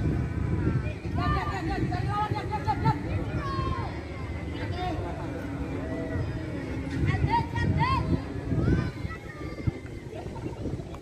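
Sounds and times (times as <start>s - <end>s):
children shouting: 3.1s - 10.5s.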